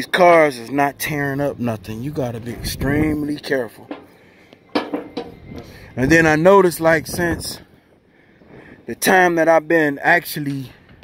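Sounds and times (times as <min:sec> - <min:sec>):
footsteps on perforated metal deck: 0:00.2 - 0:08.9.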